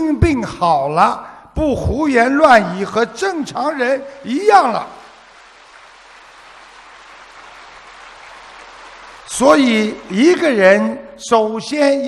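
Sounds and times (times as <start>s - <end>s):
large audience applauding: 4.3s - 10.8s.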